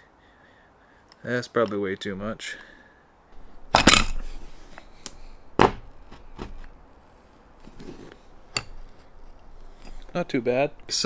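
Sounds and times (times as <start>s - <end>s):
metal tools knocking and clinking: 3.5s - 4.4s, 8.5s - 11.0s.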